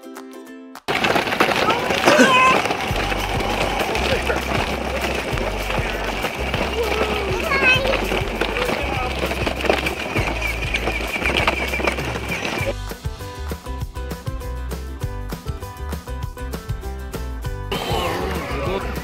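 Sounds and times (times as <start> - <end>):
music: 0.0 - 19.0
plastic wheels rolling over gravel: 0.9 - 13.5, 17.7 - 19.0.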